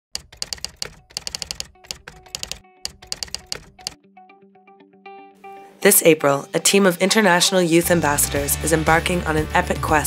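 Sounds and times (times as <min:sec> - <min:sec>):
typewriter keys clicking: 0:00.2 - 0:04.0.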